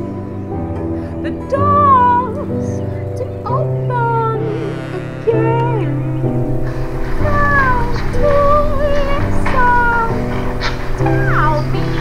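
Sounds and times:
held chords: 0:00.0 - 0:12.0.

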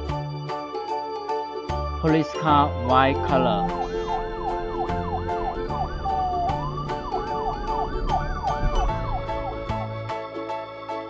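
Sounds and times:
background music with beat: 0:02.6 - 0:11.0
police siren yelp: 0:02.8 - 0:10.2.

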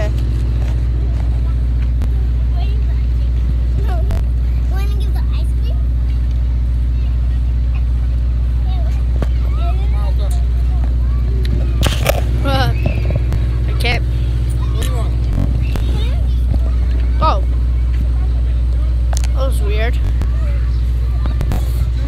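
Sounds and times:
children talking: 0:00.0 - 0:22.0
vehicle engine idling: 0:00.0 - 0:22.0.

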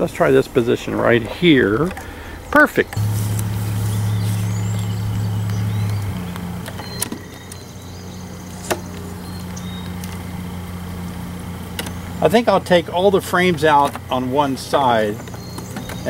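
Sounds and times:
bees humming: 0:02.1 - 0:16.0.

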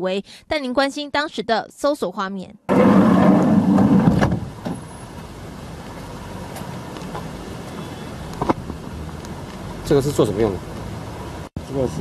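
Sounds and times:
rushing outdoor background noise: 0:02.7 - 0:12.0.

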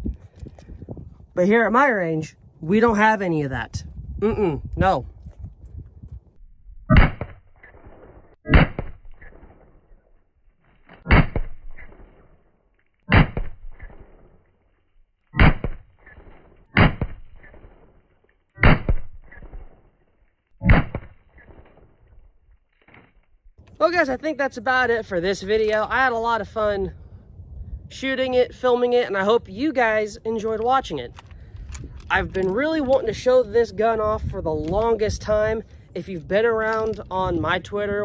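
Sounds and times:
gunshots: 0:06.9 - 0:09.8, 0:11.0 - 0:12.3, 0:13.1 - 0:14.4, 0:15.4 - 0:18.0, 0:18.6 - 0:19.8, 0:20.6 - 0:21.9.

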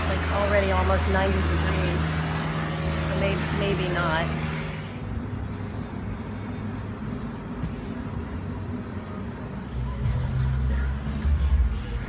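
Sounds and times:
street ambience low rumble: 0:00.0 - 0:12.0.

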